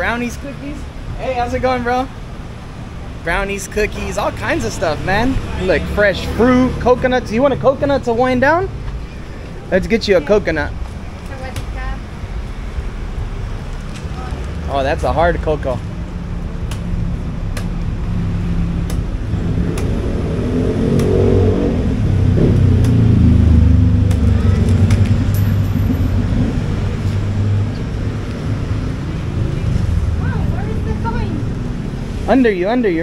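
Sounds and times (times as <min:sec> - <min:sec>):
vehicle engine passing: 0:00.0 - 0:33.0.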